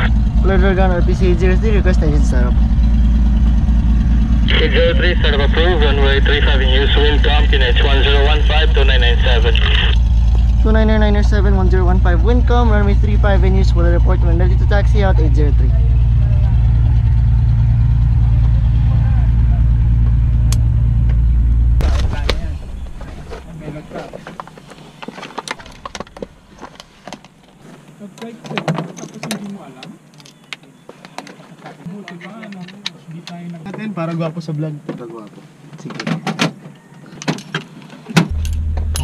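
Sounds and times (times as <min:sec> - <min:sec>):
loud low drone: 0:00.0 - 0:24.1, 0:38.3 - 0:39.0
scraping: 0:21.0 - 0:30.0
rustling: 0:21.8 - 0:30.2.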